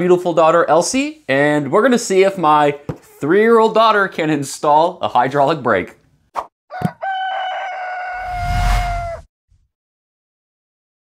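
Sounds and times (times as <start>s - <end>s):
rooster crowing: 6.7s - 9.3s.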